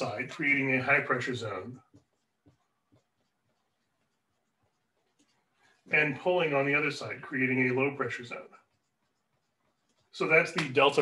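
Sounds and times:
marker squeaking on whiteboard: 0:00.0 - 0:11.0.

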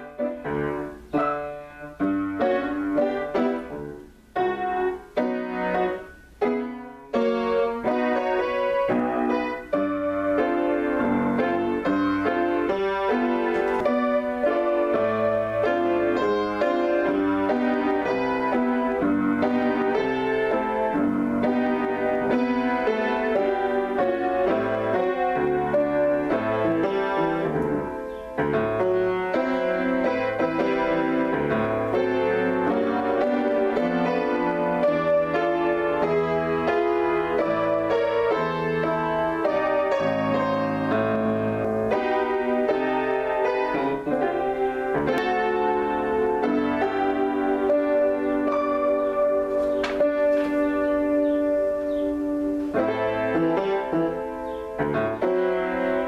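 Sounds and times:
solo piano playing chords: 0:00.0 - 0:56.0.

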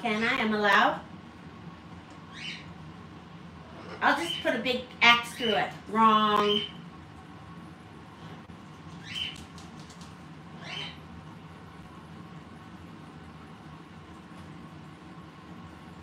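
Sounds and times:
low room hum: 0:00.0 - 0:16.0
parrot calls: 0:02.3 - 0:02.7, 0:09.0 - 0:09.4, 0:10.6 - 0:11.0.

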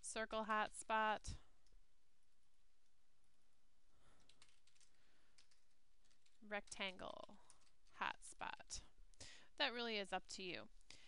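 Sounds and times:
computer keyboard keystrokes: 0:04.2 - 0:07.8.

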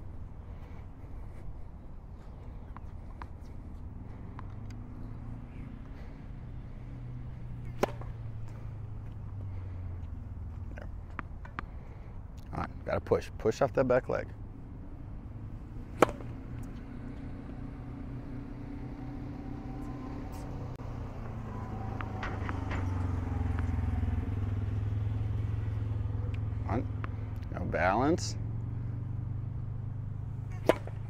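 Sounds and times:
low steady rumble: 0:00.0 - 0:31.0
tennis ball struck with racket: 0:07.6 - 0:08.3, 0:15.9 - 0:16.8, 0:21.9 - 0:24.3, 0:30.5 - 0:31.0.

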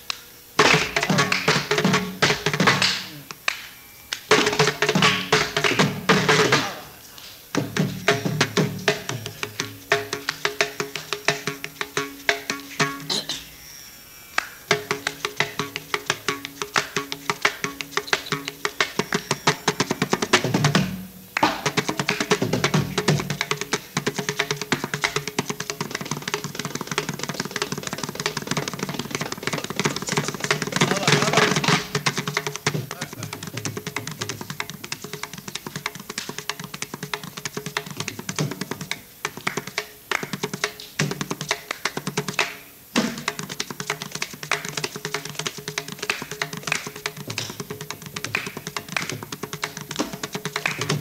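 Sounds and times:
mridangam fast strokes: 0:00.0 - 0:51.0.

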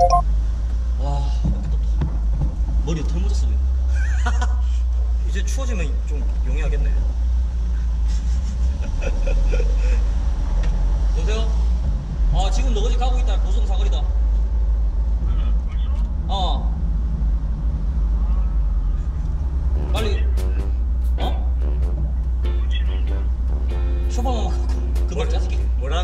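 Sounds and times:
car engine rumble: 0:00.0 - 0:26.0
road noise: 0:00.0 - 0:26.0
men talking: 0:02.8 - 0:07.1, 0:11.2 - 0:11.6, 0:12.3 - 0:14.2, 0:15.1 - 0:16.8, 0:18.1 - 0:26.0.

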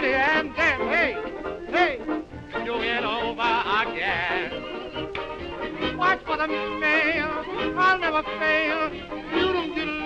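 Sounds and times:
man's wordless vocal with vibrato: 0:00.0 - 0:04.8, 0:05.9 - 0:10.0
early jazz band playing: 0:00.0 - 0:10.0.

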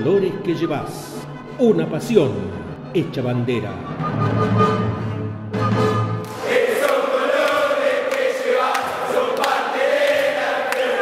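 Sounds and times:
crowd singing a chant: 0:06.3 - 0:11.0.

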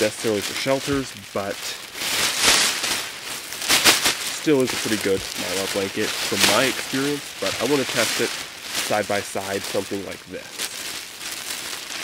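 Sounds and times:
mylar blanket crinkling: 0:00.0 - 0:12.0.

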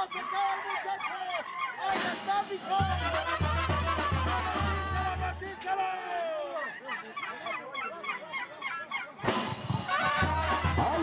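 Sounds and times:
crowd voices: 0:00.0 - 0:11.0
live band music: 0:01.9 - 0:05.4, 0:09.2 - 0:11.0.

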